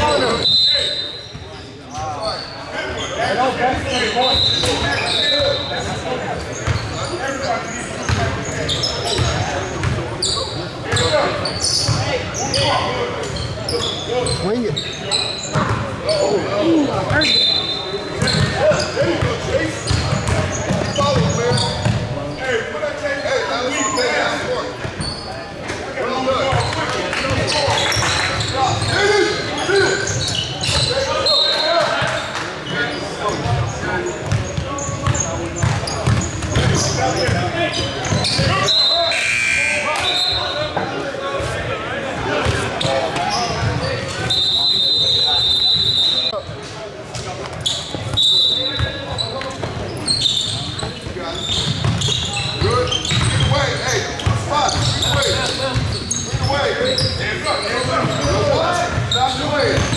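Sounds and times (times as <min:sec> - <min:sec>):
people talking and shouting: 0:00.0 - 0:59.9
basketballs bouncing on hardwood: 0:34.2 - 0:37.4, 0:51.6 - 0:53.5.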